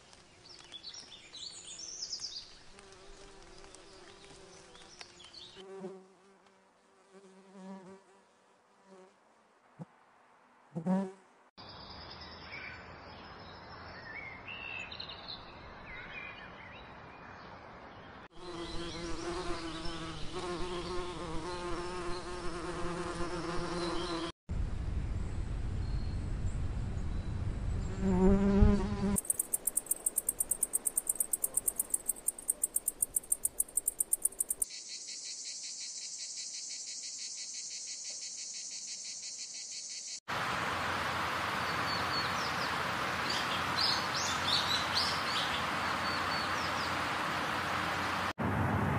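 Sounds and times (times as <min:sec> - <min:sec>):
insect wing buzz: 0:00.0 - 0:09.2, 0:18.3 - 0:24.3, 0:27.7 - 0:40.2
steady outdoor hiss: 0:00.0 - 0:48.9
insects chirping in high trill: 0:29.1 - 0:40.2.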